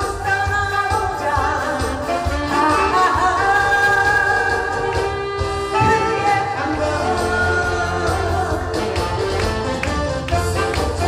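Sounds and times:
woman singing into a microphone: 0.0s - 9.5s
backing band with steady beat: 0.0s - 11.0s.

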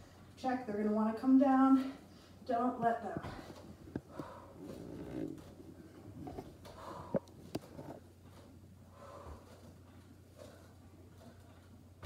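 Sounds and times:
woman breathing hard: 3.3s - 5.0s, 6.6s - 7.4s, 8.8s - 9.7s.

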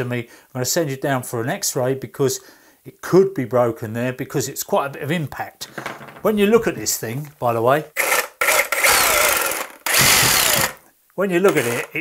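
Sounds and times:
reciprocating saw hammering: 8.8s - 10.8s.

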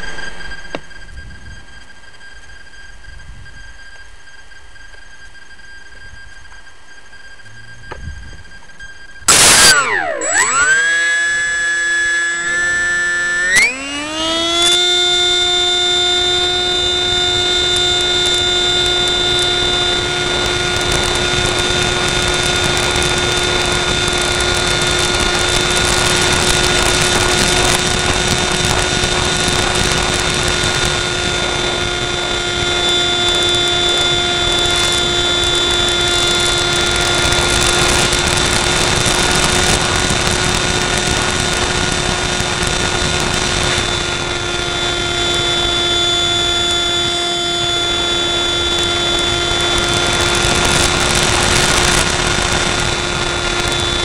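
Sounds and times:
electric motor propeller whine: 0.0s - 54.0s.

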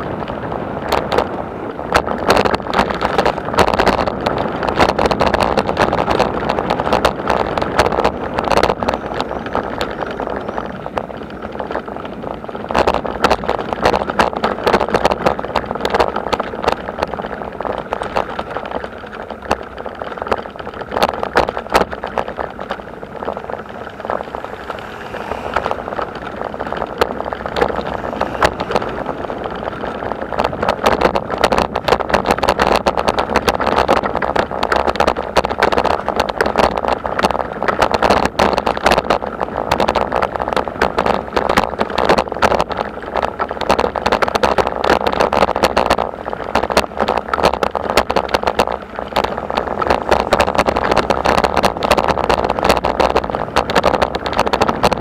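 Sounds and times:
vehicle rattling over cobblestones: 0.0s - 55.0s.

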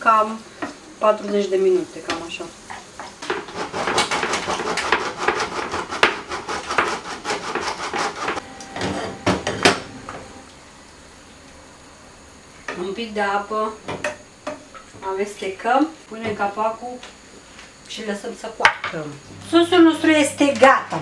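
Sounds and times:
meat sizzling in a frying pan: 0.0s - 4.4s.

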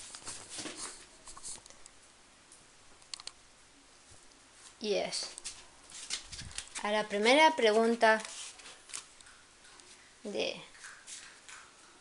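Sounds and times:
faint rustling handling noise: 0.0s - 2.0s, 4.0s - 10.2s.

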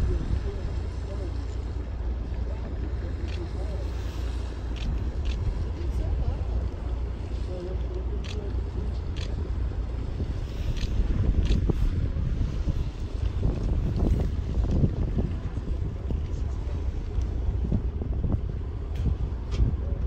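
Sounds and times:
boat engine rumbling: 0.0s - 20.0s
water splashes: 0.0s - 20.0s
wind buffeting microphone: 0.0s - 20.0s.

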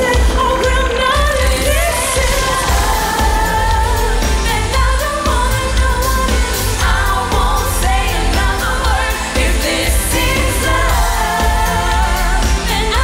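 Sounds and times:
female vocal group singing pop song: 0.0s - 13.0s.

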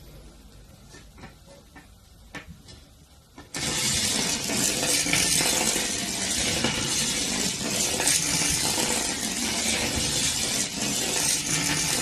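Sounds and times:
loud steady hissing rattle: 3.4s - 12.0s.

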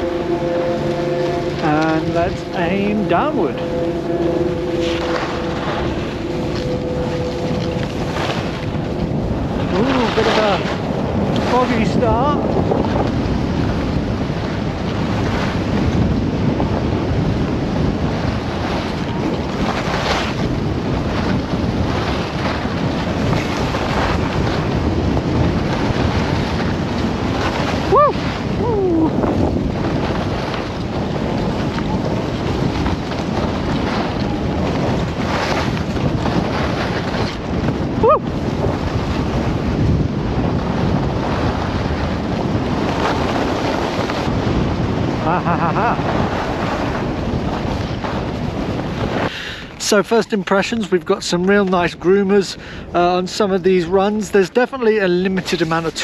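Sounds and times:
wind rushing over microphone: 0.0s - 56.0s
skis sliding over snow: 1.0s - 3.6s, 4.7s - 56.0s.

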